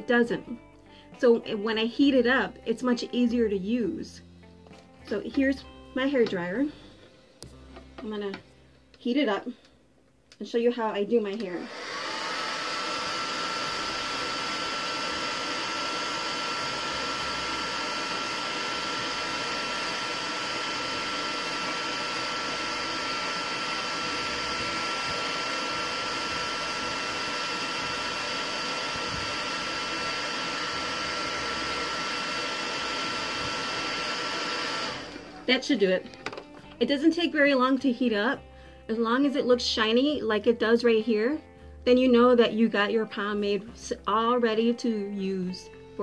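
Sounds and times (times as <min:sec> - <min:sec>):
hair dryer running: 0:11.3 - 0:36.9.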